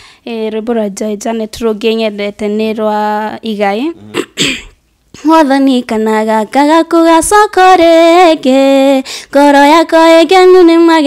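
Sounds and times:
woman singing unaccompanied: 5.2 - 11.0.

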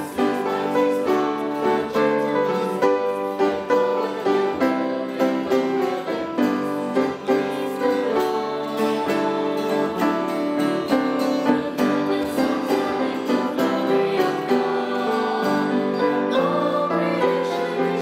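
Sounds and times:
instrumental accompaniment: 0.0 - 18.0
women's choir singing: 0.0 - 18.0.

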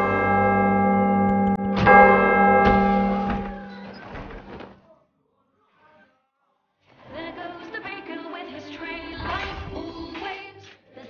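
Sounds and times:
large bell ringing: 0.0 - 4.6.

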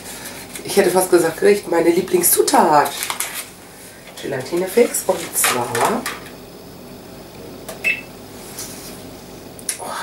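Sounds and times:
short electronic beep: 7.8 - 8.1.

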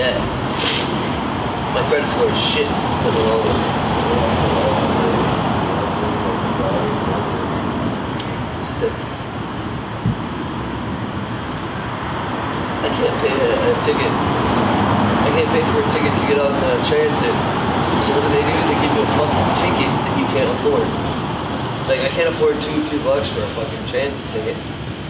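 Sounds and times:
indistinct voices talking: 0.0 - 9.3, 12.7 - 24.6
city street traffic: 0.0 - 25.0.

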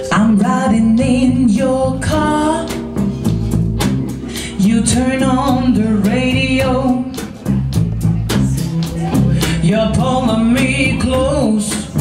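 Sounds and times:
woman singing: 0.0 - 3.0, 4.4 - 7.5, 8.3 - 12.0
live rock band playing: 0.0 - 12.0.

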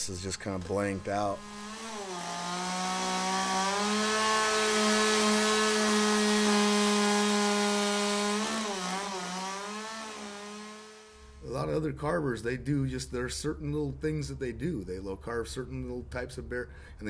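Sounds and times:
chainsaw cutting wood: 0.0 - 11.4.

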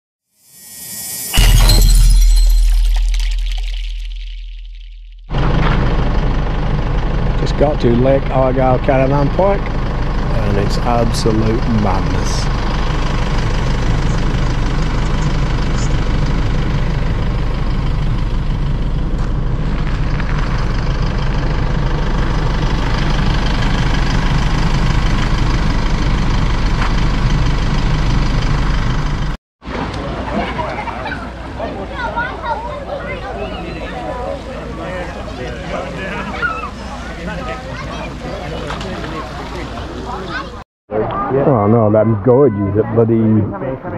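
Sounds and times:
deep boom with shattering top: 0.6 - 5.8
low engine hum: 1.6 - 30.2.

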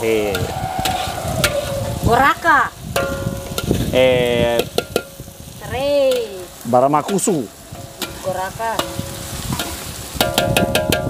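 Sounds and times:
metal spatula scraping a wok: 0.0 - 4.0, 7.0 - 11.0
paste sizzling in hot oil: 0.0 - 11.0.

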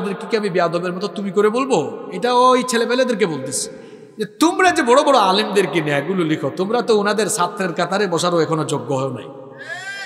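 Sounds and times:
man speaking into a microphone: 0.0 - 9.4
short high-pitched cry: 9.6 - 10.0.

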